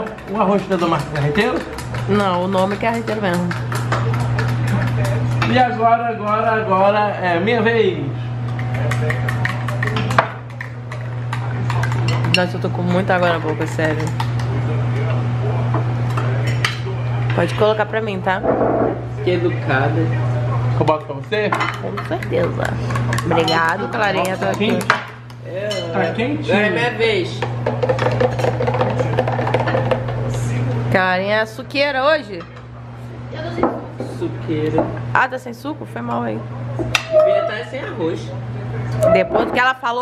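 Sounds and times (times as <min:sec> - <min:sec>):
steady low hum: 0:00.0 - 0:40.0
utensil clinking on dishes: 0:08.5 - 0:14.4, 0:25.7 - 0:26.1.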